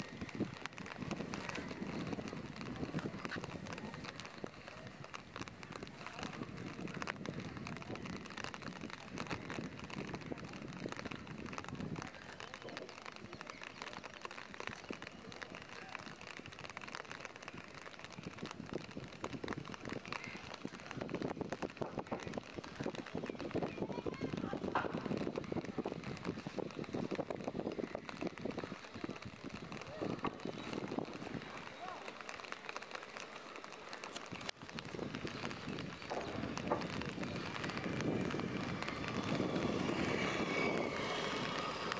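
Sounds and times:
light rain falling: 0:00.0 - 0:41.9.

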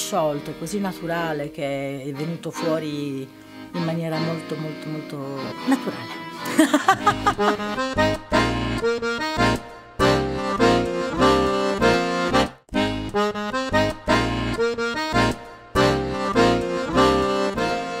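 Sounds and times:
accordion playing chords: 0:00.0 - 0:18.0.

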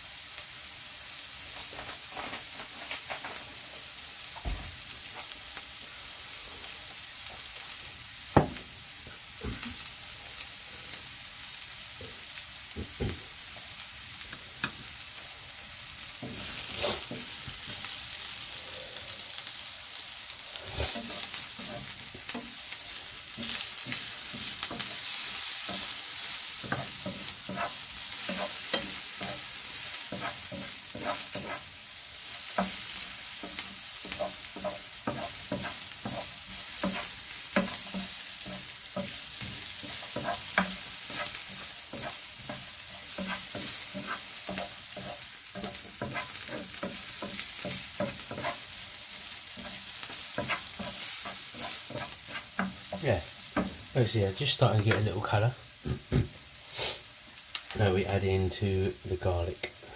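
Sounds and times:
onions sizzling in oil: 0:00.0 - 0:59.9
wooden spatula scraping pan: 0:01.5 - 0:03.6, 0:20.5 - 0:22.7, 0:23.3 - 0:31.7, 0:32.5 - 0:55.4.

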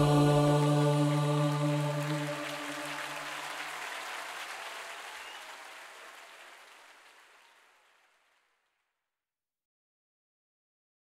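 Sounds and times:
held final chord of music: 0:00.0 - 0:03.6
audience applauding: 0:00.0 - 0:08.6.

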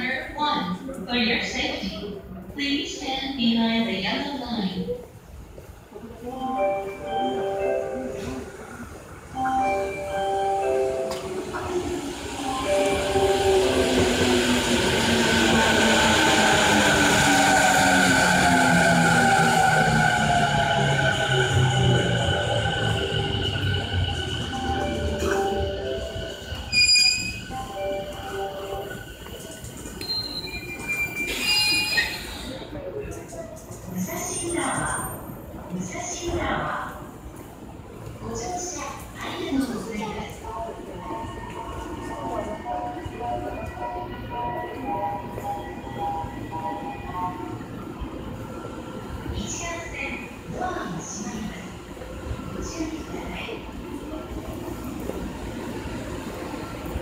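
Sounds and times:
train brakes and wheels squealing: 0:15.6 - 0:32.8.

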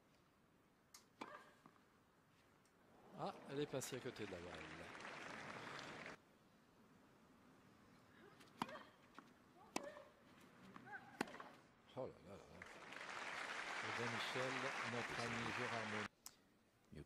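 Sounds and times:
crowd noise: 0:03.0 - 0:06.2, 0:12.6 - 0:16.1
tennis ball struck by rackets: 0:08.4 - 0:10.1, 0:10.8 - 0:11.6.

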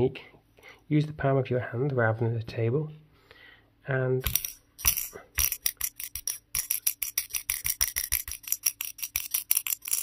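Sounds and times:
metal ball rattling in puzzle: 0:04.3 - 0:10.0.

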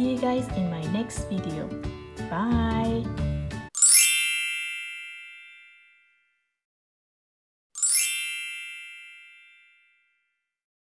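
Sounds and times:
bright shimmering chime: 0:03.8 - 0:05.7, 0:07.8 - 0:09.8.

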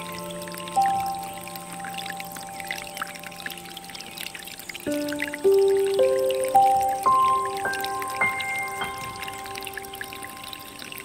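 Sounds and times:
soft music: 0:00.0 - 0:11.0
water trickling into stone basin: 0:00.0 - 0:11.0.

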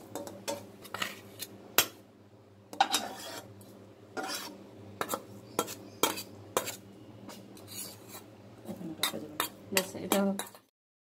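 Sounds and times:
metal spatula scraping steel plate: 0:00.1 - 0:01.5, 0:02.7 - 0:03.5, 0:04.2 - 0:08.3, 0:09.0 - 0:10.7.

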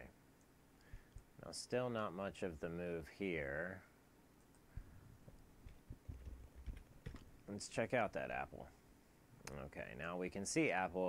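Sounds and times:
soft low thumps: 0:04.7 - 0:07.4
keyboard typing and clicks: 0:05.6 - 0:07.3.

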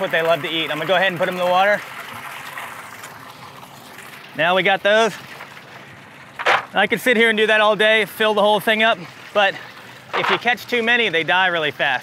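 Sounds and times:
water jetting and splashing: 0:00.0 - 0:12.0.

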